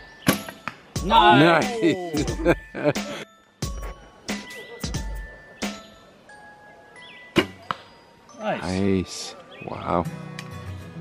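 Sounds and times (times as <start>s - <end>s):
light chiming music: 0.0s - 11.0s.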